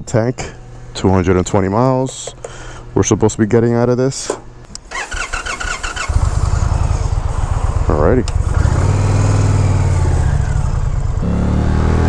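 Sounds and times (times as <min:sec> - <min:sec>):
starter motor cranking: 0:04.9 - 0:06.5
motorcycle engine idling: 0:04.9 - 0:11.4.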